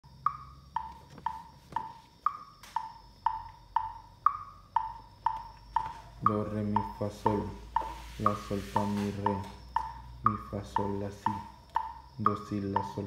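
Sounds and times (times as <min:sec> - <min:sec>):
metronome clicking: 0:00.0 - 0:13.0.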